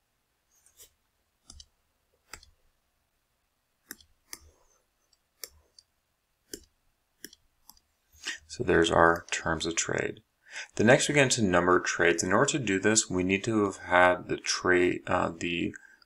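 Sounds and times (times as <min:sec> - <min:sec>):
computer mouse clicks: 0:00.8 - 0:02.6, 0:03.8 - 0:05.9, 0:06.5 - 0:07.9.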